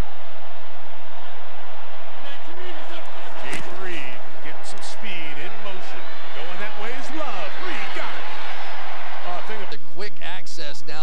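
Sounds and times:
crowd murmur: 0:01.6 - 0:10.1
men talking indistinctly: 0:02.2 - 0:11.0.

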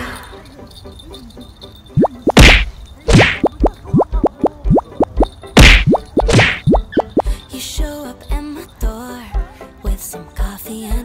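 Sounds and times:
rising bloop notes: 0:02.0 - 0:07.2
sharp noisy hits: 0:05.6 - 0:06.7.

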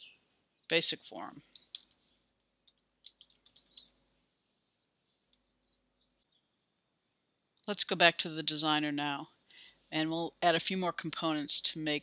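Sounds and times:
faint keyboard typing: 0:01.4 - 0:04.0.

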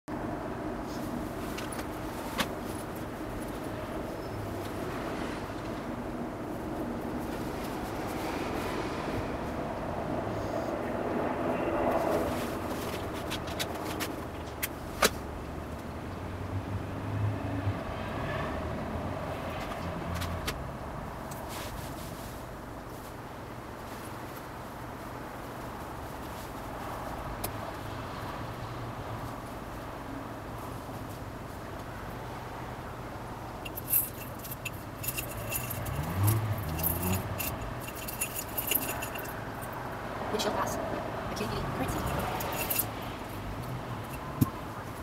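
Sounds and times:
rustles: 0:00.8 - 0:09.6, 0:11.9 - 0:15.3, 0:21.2 - 0:27.8, 0:33.6 - 0:39.8.

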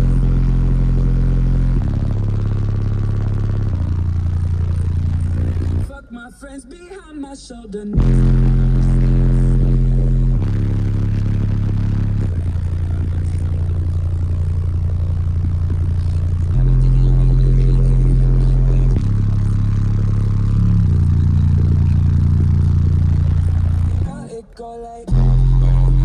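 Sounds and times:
loud bass notes from subwoofers: 0:00.0 - 0:26.0.

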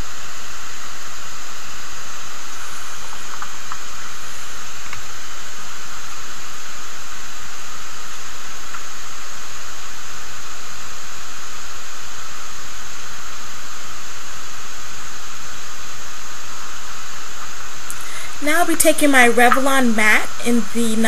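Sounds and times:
recording noise hiss: 0:00.0 - 0:21.0.

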